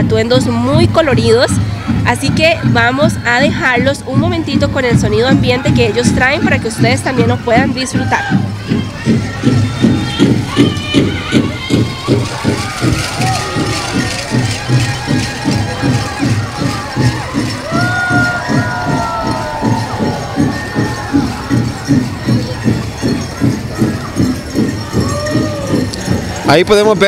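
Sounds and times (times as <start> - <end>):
big drum steady beat: 0.0 - 27.0.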